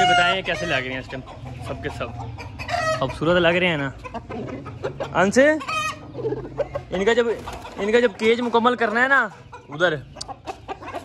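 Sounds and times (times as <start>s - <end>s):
high-pitched chicken call: 0.0s - 0.8s, 2.3s - 3.2s, 5.5s - 6.6s
chickens clucking: 0.0s - 11.0s.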